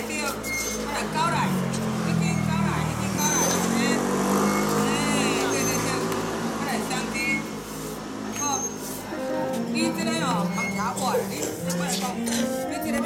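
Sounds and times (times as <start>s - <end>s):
vehicle engine running: 0.0s - 8.4s.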